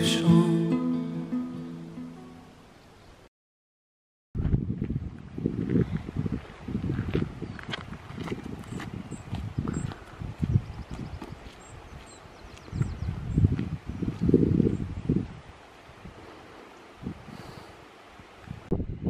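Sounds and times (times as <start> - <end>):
wind buffeting microphone: 4.4 - 17.6, 18.2 - 19.0.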